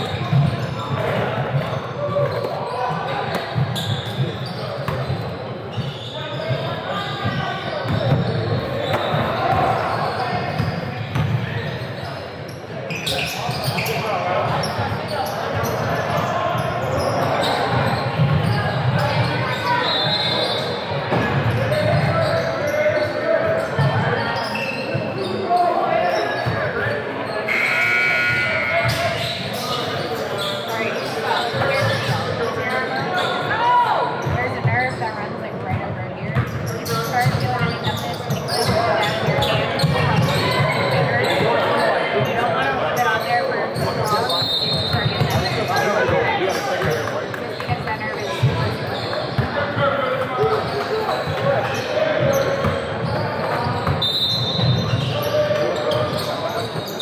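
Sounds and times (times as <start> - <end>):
echoing indistinct chatter: 0.0 - 57.0.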